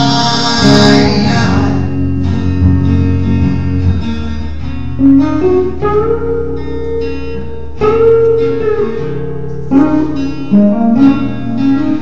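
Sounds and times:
acoustic guitar chords: 0:00.0 - 0:12.0
electric guitar chords: 0:00.0 - 0:12.0.

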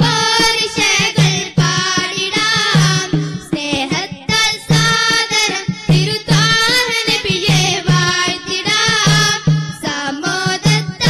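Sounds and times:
low percussion beat: 0:00.0 - 0:11.0
young voices singing in unison: 0:00.0 - 0:11.0.

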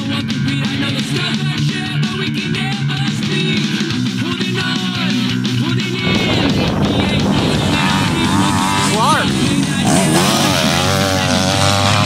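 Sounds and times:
background music: 0:00.0 - 0:12.0
dirt bike engines revving: 0:00.0 - 0:12.0.

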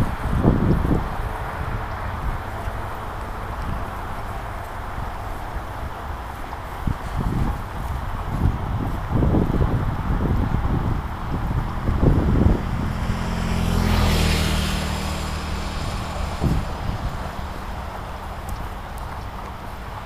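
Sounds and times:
vehicle passing with tyre hiss: 0:00.0 - 0:20.0
wind buffeting microphone: 0:00.0 - 0:20.0.

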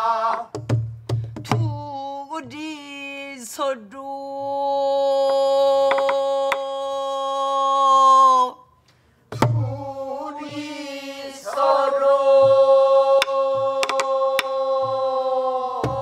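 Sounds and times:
voices singing held note: 0:00.0 - 0:00.6, 0:09.6 - 0:16.0.

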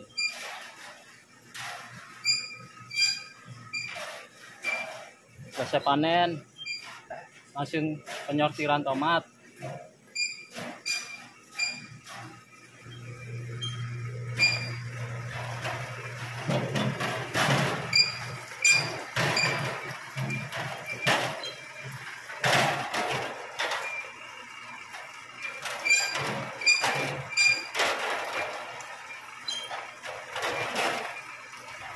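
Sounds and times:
short high squeaks: 0:00.0 - 0:00.8, 0:01.6 - 0:05.1, 0:10.2 - 0:12.0, 0:13.6 - 0:14.9, 0:17.8 - 0:21.7, 0:25.4 - 0:28.5, 0:29.4 - 0:31.4
low motor hum: 0:12.6 - 0:31.9.

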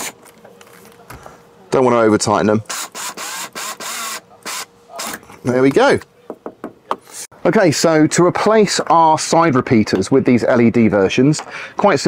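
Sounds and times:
screwdriver grinding screw: 0:02.7 - 0:05.2.

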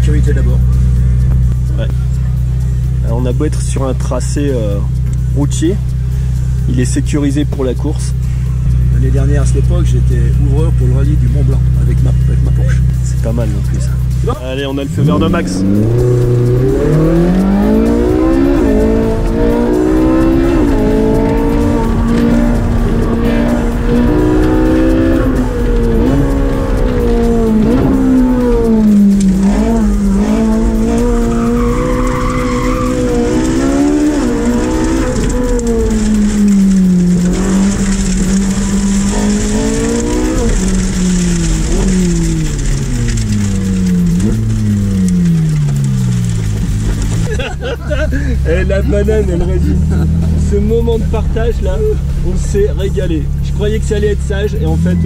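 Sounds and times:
car engine revving: 0:00.0 - 0:55.0
tyres squealing: 0:13.8 - 0:55.0.

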